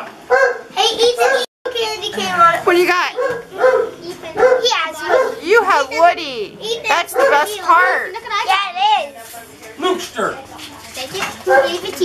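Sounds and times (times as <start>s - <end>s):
children chattering and squealing: 3.4s - 9.4s.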